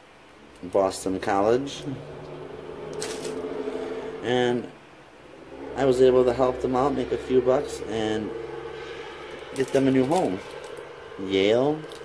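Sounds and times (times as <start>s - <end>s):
steady low hum: 0.0s - 12.0s
plastic pens rustling and clicking: 2.9s - 3.4s, 9.6s - 10.8s.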